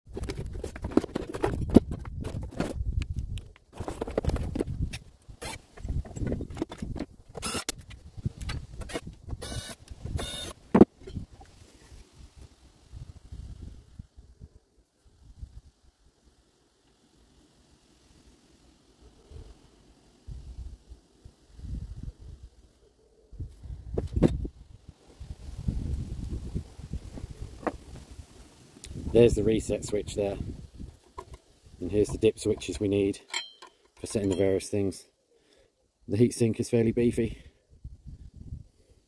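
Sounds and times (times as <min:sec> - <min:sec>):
light knocks and handling: 0:32.0 - 0:34.6.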